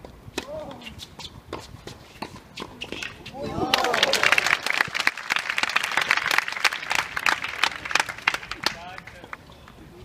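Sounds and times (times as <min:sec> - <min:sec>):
spectators applauding: 0:03.7 - 0:09.2.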